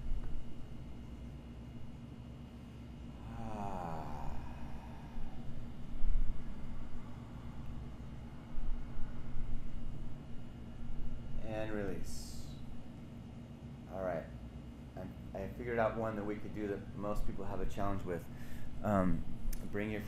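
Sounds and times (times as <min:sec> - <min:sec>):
room hum: 0:00.0 - 0:20.0
person sighing: 0:03.1 - 0:05.6.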